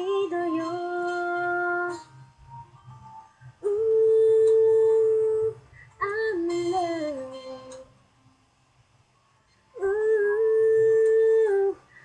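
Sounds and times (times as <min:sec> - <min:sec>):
person singing a long note: 0:03.6 - 0:07.8, 0:09.8 - 0:11.8.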